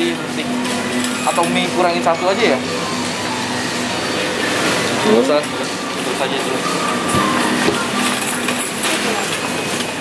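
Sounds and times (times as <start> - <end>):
store hum: 0.0 - 10.0
shopping trolley rattling on tiles: 7.1 - 10.0.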